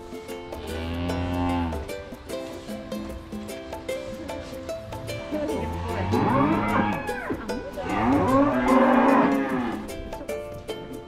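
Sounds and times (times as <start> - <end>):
cow mooing: 0.6 - 1.9, 5.6 - 9.9.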